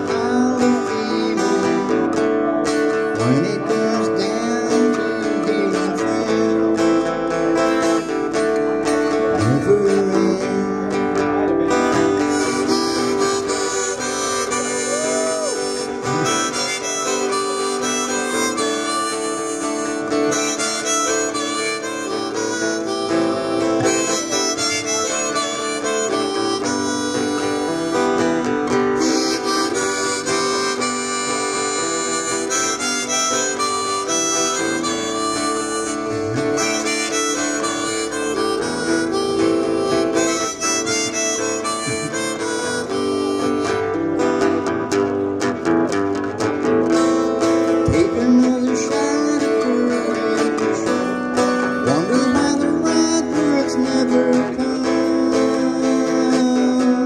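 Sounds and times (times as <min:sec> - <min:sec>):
harmonica melody: 0:00.0 - 0:57.0
strummed acoustic guitar: 0:00.0 - 0:57.0.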